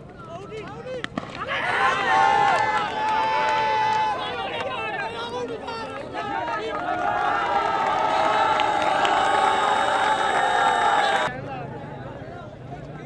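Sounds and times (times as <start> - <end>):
bat knocking ball: 1.0 - 1.4.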